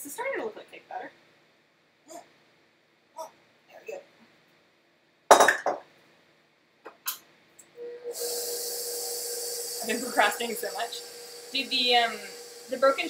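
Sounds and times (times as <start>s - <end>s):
stand mixer motor humming: 7.8s - 13.0s.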